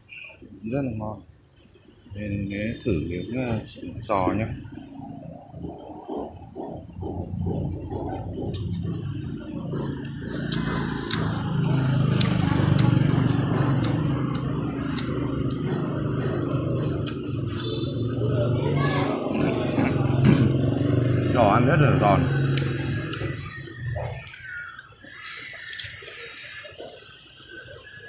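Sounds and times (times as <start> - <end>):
background voices: 3.9 - 27.1.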